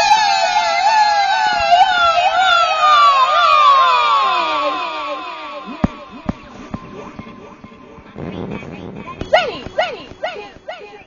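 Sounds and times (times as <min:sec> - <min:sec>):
voice-changed barking calls: 0:05.1 - 0:11.0.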